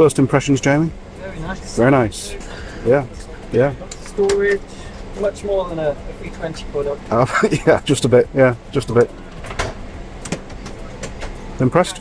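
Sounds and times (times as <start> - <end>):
airplane cabin hum: 0.0 - 12.0.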